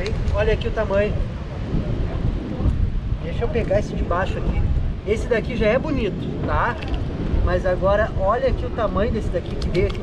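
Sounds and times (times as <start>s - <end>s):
rough surf rushing: 0.0s - 10.0s
wind rumbling on microphone: 0.0s - 10.0s.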